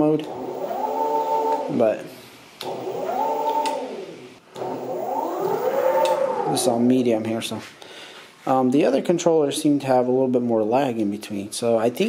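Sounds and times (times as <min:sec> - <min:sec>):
electric motor whine: 0:00.3 - 0:01.8, 0:02.6 - 0:06.9.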